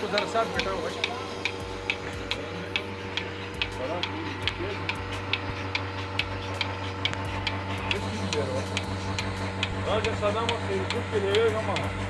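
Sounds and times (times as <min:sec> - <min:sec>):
sharp pulsator clicks: 0:00.0 - 0:12.0
vacuum pump motor hum: 0:00.0 - 0:12.0.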